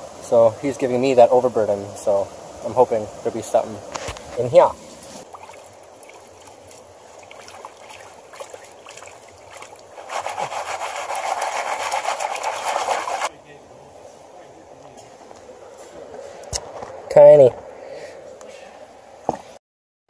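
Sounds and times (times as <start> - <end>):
stream trickling: 0.0 - 13.3
water sloshing in a pan: 5.0 - 13.3.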